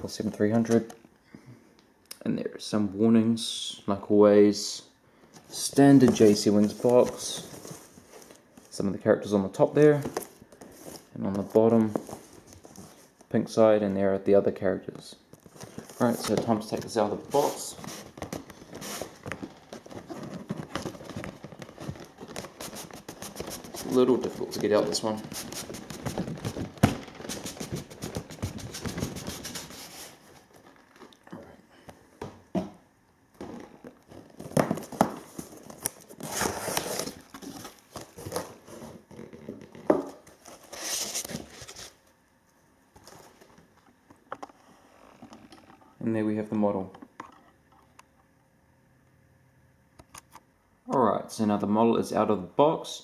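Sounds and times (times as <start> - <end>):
packaging crinkling and rustling: 5.4 - 8.8, 15.3 - 31.2, 33.4 - 42.0.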